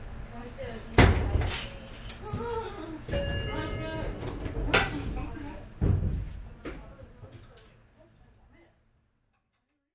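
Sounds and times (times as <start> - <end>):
cable car cabin rumble: 3.1 - 5.7.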